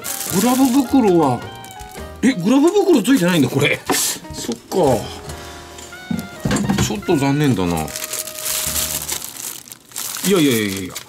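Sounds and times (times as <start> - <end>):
plastic bag crinkling: 0.0 - 5.0, 6.1 - 11.0.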